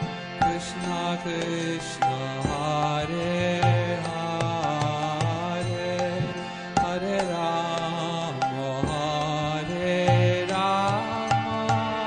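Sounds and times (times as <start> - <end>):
chanted mantra with accompaniment: 0.0 - 12.0.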